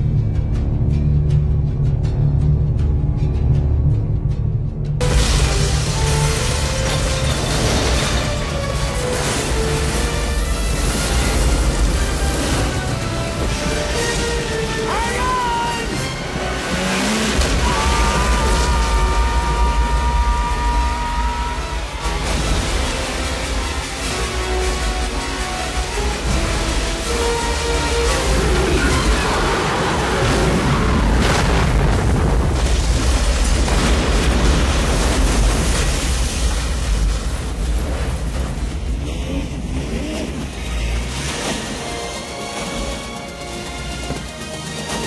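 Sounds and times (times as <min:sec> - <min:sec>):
film soundtrack music: 0:00.0 - 0:45.0
rumbling roar of explosion: 0:16.8 - 0:40.6.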